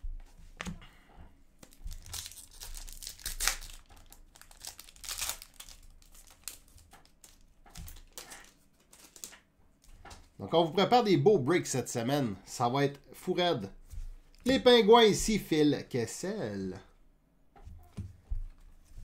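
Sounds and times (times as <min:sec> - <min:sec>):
foil wrapper crinkling and tearing: 0:01.6 - 0:09.4.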